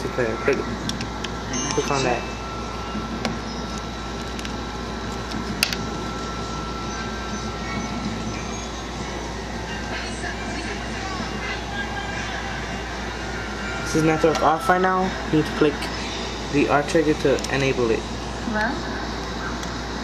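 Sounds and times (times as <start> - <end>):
air conditioner noise: 0.0 - 20.0
faint steady whine: 0.0 - 20.0.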